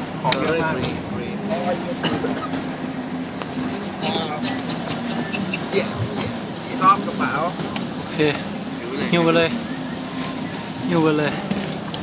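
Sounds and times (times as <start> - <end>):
low hum inside van: 0.0 - 12.0.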